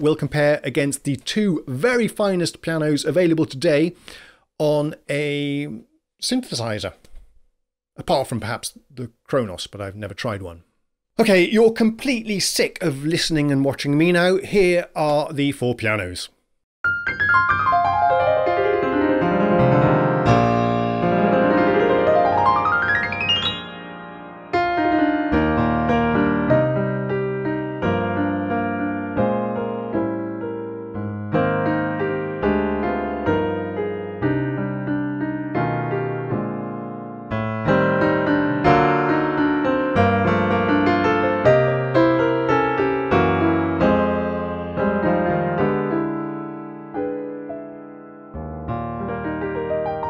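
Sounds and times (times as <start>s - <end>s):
piano chords over bass notes: 16.8s - 50.0s.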